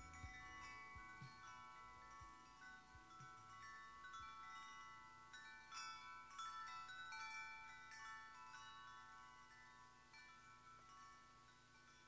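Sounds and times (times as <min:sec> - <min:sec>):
high bell-like chimes: 0:00.0 - 0:12.0.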